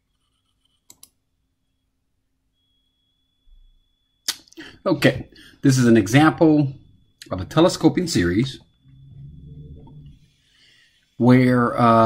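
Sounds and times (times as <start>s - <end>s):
computer mouse click: 0.2s - 1.2s
man speaking: 4.6s - 8.6s, 11.2s - 12.0s.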